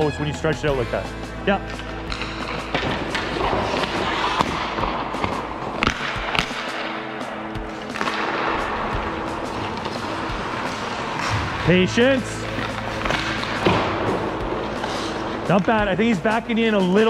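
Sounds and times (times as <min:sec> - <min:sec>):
background music: 0:00.0 - 0:17.0
puck and sticks clacking: 0:01.6 - 0:17.0
skates scraping ice: 0:01.7 - 0:17.0.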